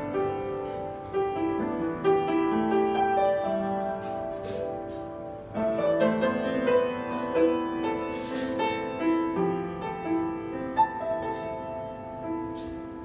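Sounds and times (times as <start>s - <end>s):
solo jazz piano: 0.0s - 13.0s.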